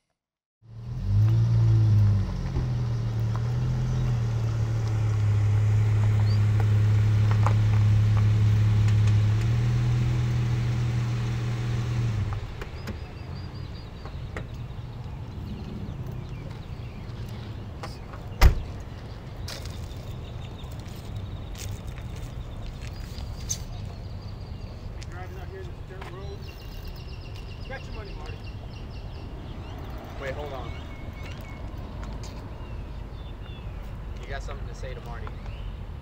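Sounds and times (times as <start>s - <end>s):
car engine humming: 0.6s - 23.4s.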